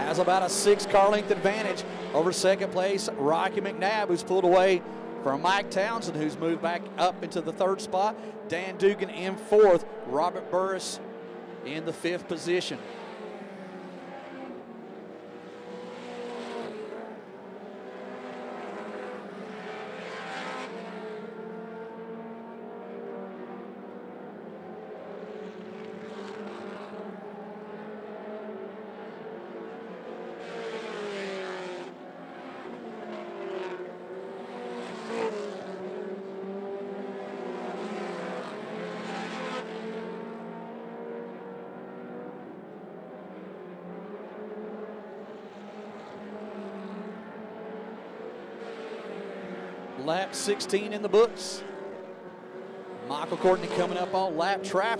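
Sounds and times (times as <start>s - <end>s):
race car engines: 0.0s - 54.9s.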